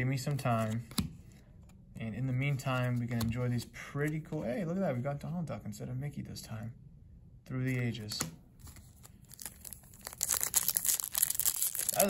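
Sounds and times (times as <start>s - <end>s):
foil wrapper crinkling and tearing: 8.8s - 12.0s.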